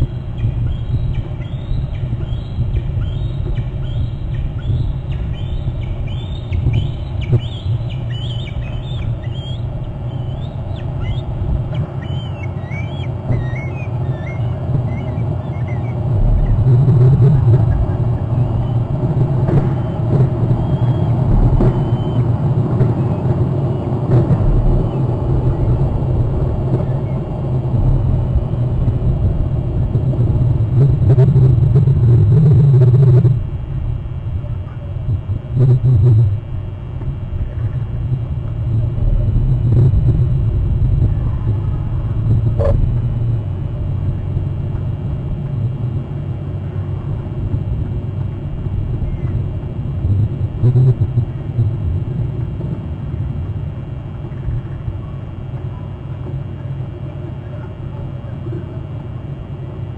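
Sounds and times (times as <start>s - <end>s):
eagle calling whistled notes: 0.0s - 19.0s, 19.6s - 24.0s
low rumble: 0.0s - 59.9s.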